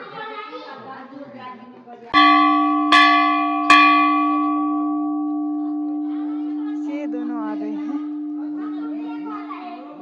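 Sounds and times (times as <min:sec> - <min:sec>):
temple bell ringing: 0:02.2 - 0:10.0.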